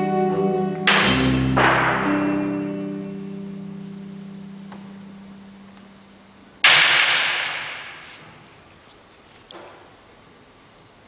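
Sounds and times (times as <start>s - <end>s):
cymbal crash: 0.9s - 2.7s.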